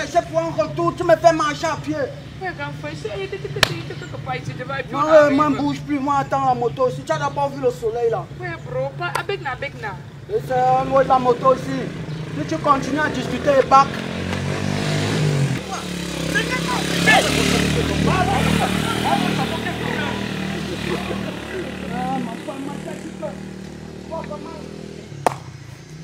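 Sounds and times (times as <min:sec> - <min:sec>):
voices talking: 0:00.0 - 0:26.0
small motorcycle engine running: 0:10.6 - 0:26.0.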